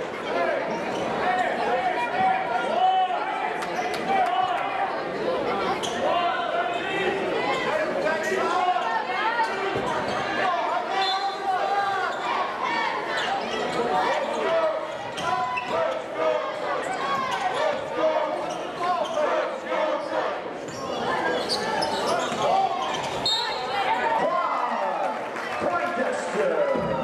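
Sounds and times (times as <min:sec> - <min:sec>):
spectators chattering: 0:00.0 - 0:27.0.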